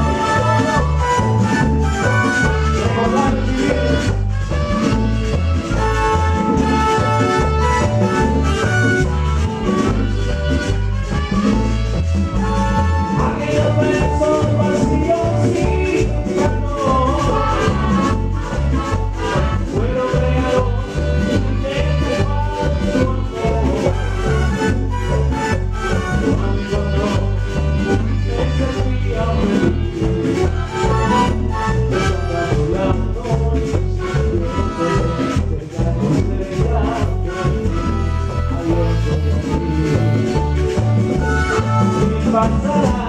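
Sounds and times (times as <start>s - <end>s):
congas and timbales: 0.0s - 43.0s
live salsa band playing: 0.0s - 43.0s
trumpet and trombone lines: 0.0s - 43.0s.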